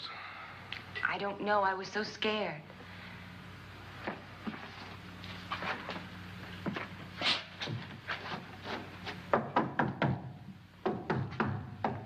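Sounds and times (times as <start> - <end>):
old film soundtrack hum: 0.0 - 12.0.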